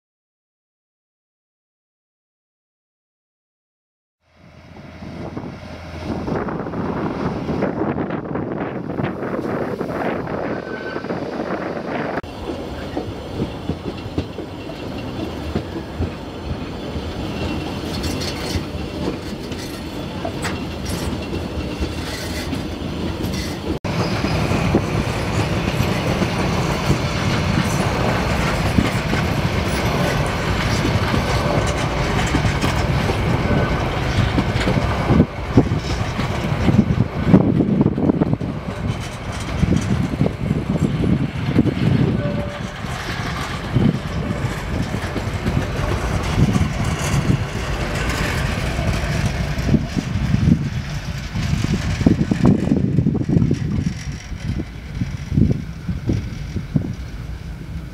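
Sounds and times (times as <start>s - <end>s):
diesel locomotive: 4.2s - 57.9s
train wheels clicking over rail joints: 12.0s - 57.9s.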